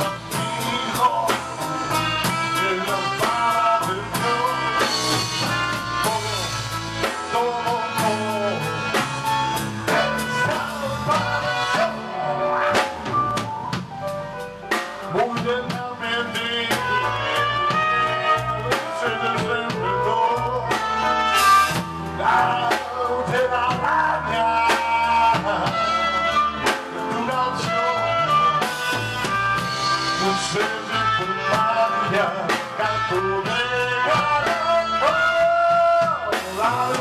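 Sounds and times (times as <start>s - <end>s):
man singing into microphone: 0.0s - 13.3s, 14.8s - 37.0s
drum kit: 0.0s - 37.0s
electric guitar: 0.0s - 37.0s
keyboard playing: 0.0s - 37.0s.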